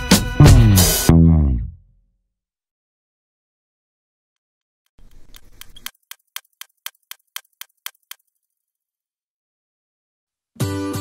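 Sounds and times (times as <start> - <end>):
stopwatch ticking: 5.0 - 8.3.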